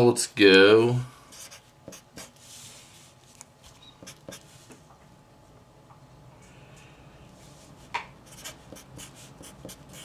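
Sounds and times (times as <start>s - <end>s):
felt-tip marker writing on paper: 8.3s - 10.0s.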